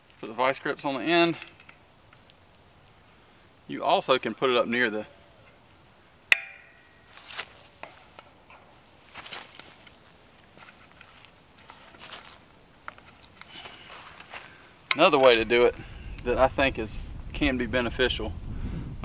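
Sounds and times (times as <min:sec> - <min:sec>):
sharp metallic snap of wire: 0:06.3 - 0:06.9.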